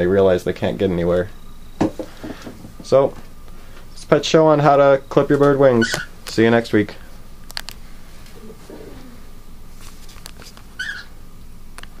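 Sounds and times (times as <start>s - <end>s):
cockatiel chirp: 5.8s - 6.1s, 10.8s - 11.1s.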